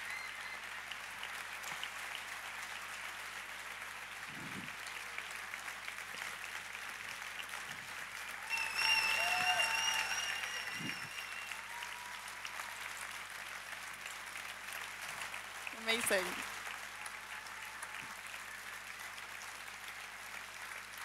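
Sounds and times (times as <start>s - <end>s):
large audience applauding: 0.0s - 21.0s.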